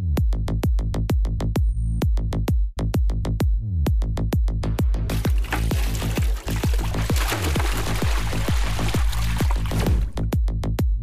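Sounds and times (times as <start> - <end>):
dramatic music with drum beat: 0.2 - 11.0
water splashing from bucket: 5.1 - 10.2.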